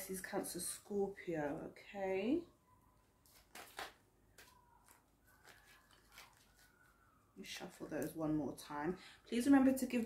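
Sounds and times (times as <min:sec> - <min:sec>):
cards being shuffled: 0:03.2 - 0:07.0.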